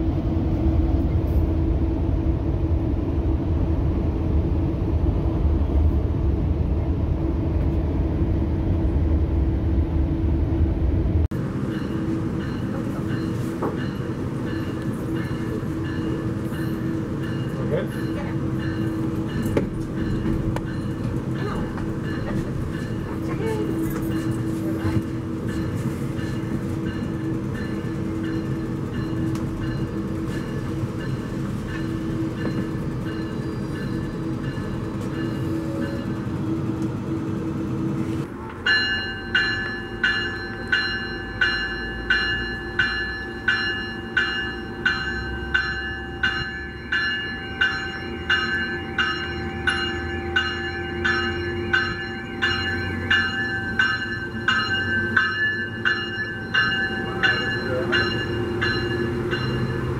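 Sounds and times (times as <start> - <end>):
train coach rumble and hum: 0.0 - 59.9
train rolling past: 0.0 - 59.9
train bell ringing: 11.3 - 59.9.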